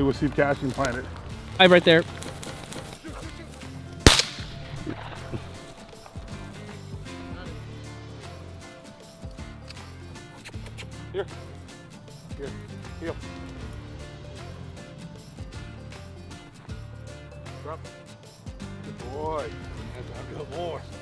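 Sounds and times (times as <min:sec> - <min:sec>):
shotgun shot with echo: 0:04.1 - 0:05.7.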